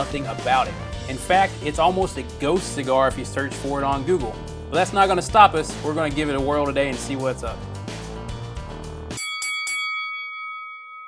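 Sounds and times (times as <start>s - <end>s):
background music: 0.0s - 9.3s
boxing bell ringing: 9.1s - 11.0s.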